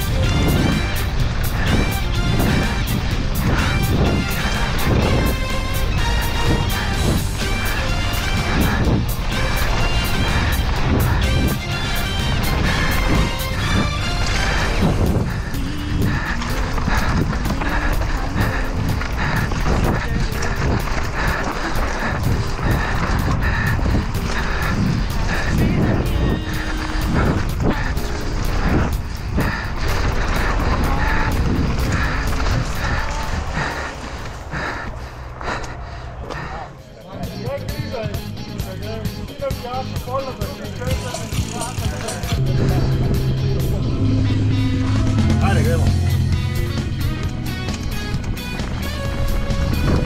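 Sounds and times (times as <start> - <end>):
bike tyres rumbling on dirt: 0.0 - 36.8, 37.9 - 50.0
background music: 0.0 - 50.0
crowd voices: 0.0 - 50.0
chain and frame rattling: 40.4 - 42.5.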